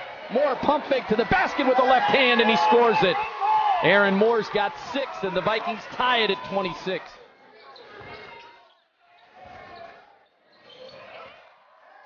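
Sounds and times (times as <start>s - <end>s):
faint arena crowd noise: 0.0s - 12.0s.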